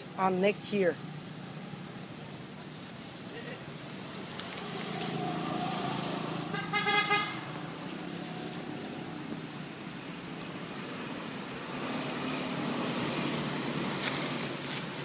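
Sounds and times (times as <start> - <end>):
passing road traffic: 0.0 - 15.0
vehicle horn: 6.5 - 7.4.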